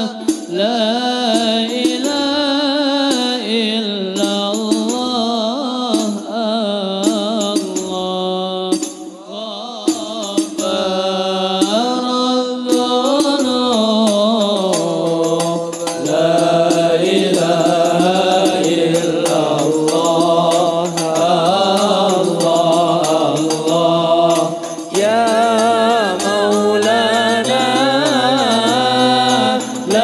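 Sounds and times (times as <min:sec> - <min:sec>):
man singing into a microphone: 0:00.0 - 0:30.0
men singing together: 0:00.0 - 0:30.0.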